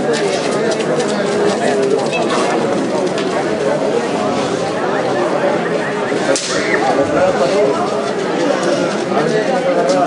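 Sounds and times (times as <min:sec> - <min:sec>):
spectators chattering: 0:00.0 - 0:10.0
sharp crack: 0:06.3 - 0:07.1.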